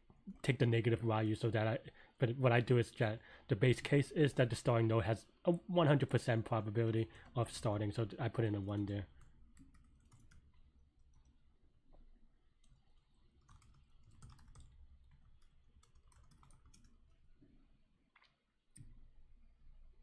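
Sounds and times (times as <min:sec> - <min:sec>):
faint keyboard typing: 0:08.3 - 0:17.4.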